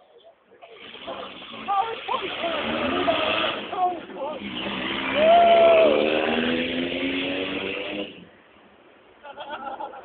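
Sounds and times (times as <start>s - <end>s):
vehicle engine pulling away: 0.7s - 8.4s.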